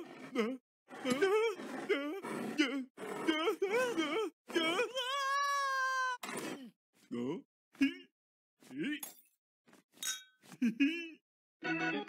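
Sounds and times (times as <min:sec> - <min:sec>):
cartoon voices grunting and laughing: 0:00.0 - 0:08.1
glasses clinking: 0:10.0 - 0:10.4.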